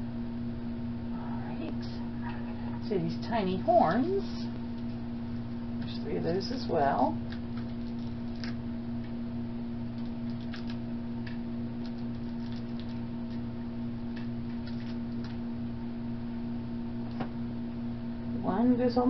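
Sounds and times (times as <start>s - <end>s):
electrical hum: 0.0s - 19.0s.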